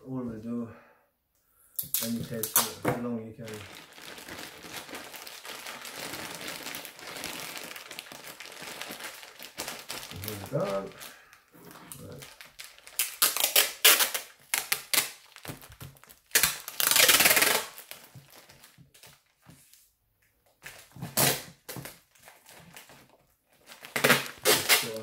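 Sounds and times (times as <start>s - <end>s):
tape ripping off roll: 1.8s - 7.7s, 12.9s - 18.3s, 20.8s - 22.0s, 23.8s - 25.0s
plastic bag rustling: 3.4s - 19.6s, 20.6s - 25.0s.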